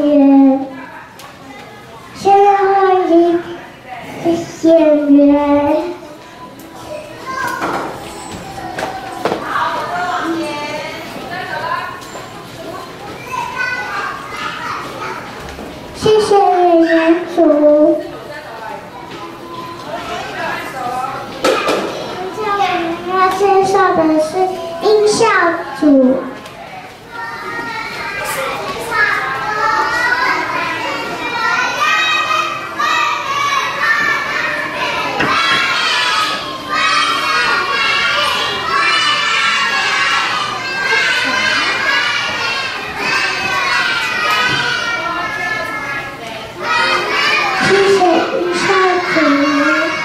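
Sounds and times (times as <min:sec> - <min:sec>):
children chattering and calling out: 0:00.0 - 0:50.0
young children singing: 0:27.2 - 0:50.0.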